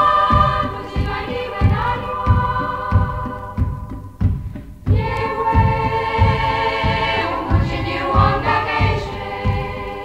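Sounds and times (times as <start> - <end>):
choir singing in harmony: 0.0 - 10.0
low drum beat: 0.0 - 10.0.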